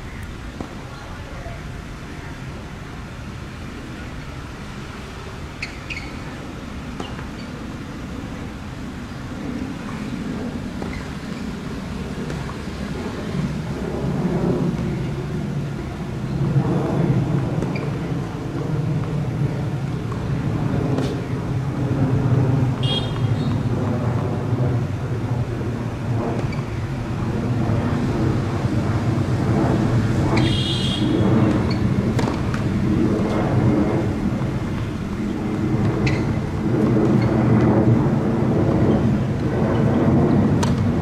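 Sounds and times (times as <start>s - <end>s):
road traffic rumble: 0.0s - 41.0s.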